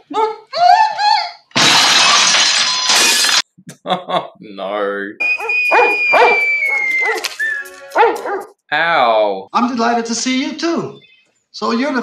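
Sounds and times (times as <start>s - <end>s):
dog yapping: 0.0s - 1.4s, 5.3s - 8.6s.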